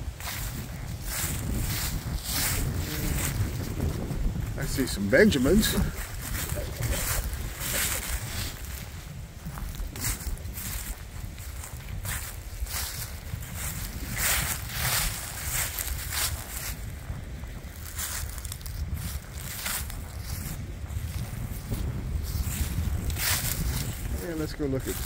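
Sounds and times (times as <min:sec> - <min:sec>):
footsteps through dry leaves: 0:00.0 - 0:25.0
wind buffeting microphone: 0:00.0 - 0:25.0.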